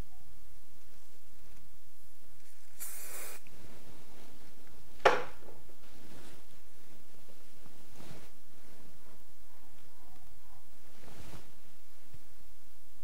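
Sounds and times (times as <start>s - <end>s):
hairspray aerosol hiss: 2.5s - 3.5s.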